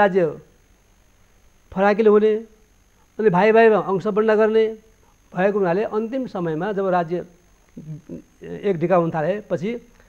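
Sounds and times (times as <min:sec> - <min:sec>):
man talking: 0:00.0 - 0:00.4, 0:01.7 - 0:02.5, 0:03.2 - 0:09.9.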